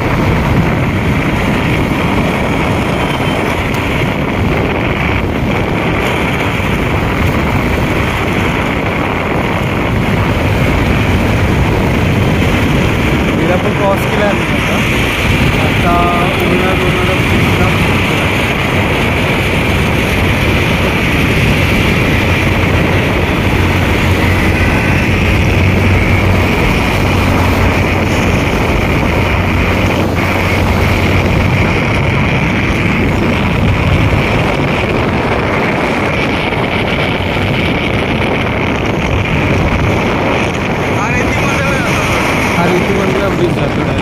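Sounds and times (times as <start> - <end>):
low engine hum: 0.0 - 44.0
road noise at speed: 0.0 - 44.0
wind rushing on microphone: 0.0 - 44.0.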